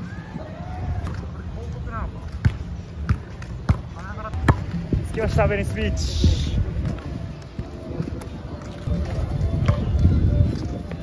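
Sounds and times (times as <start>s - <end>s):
basketball bouncing on pavement: 2.2s - 4.9s, 6.8s - 11.0s.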